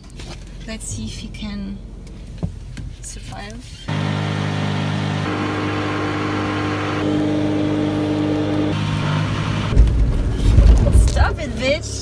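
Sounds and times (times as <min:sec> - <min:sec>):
car engine at high revs: 0:01.9 - 0:12.0
loud low rumbling and knocks: 0:09.7 - 0:11.4.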